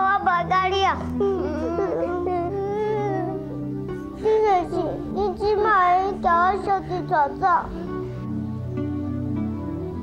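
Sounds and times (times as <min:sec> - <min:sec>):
young boy whimpering and crying: 0:00.0 - 0:08.3
soft background music: 0:00.0 - 0:10.0.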